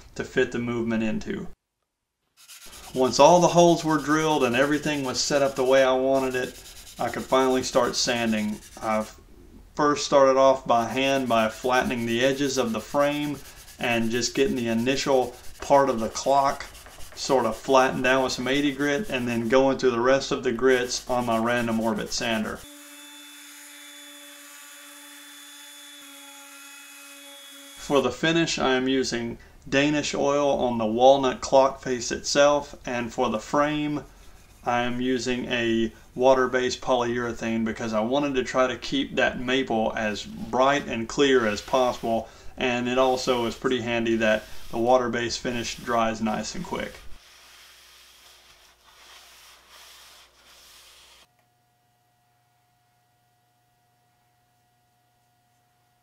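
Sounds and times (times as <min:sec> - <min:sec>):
sanding hiss: 0:02.4 - 0:09.1, 0:10.9 - 0:19.6, 0:41.2 - 0:42.3, 0:43.0 - 0:51.3
towel wiping wooden board: 0:02.4 - 0:09.2, 0:10.7 - 0:22.6, 0:40.7 - 0:42.3, 0:42.9 - 0:51.3
faint hum: 0:51.3 - 0:56.0.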